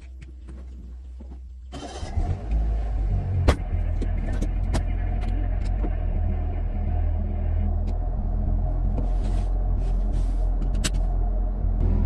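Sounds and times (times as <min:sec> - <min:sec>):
car engine starting and idling: 0:01.6 - 0:12.0.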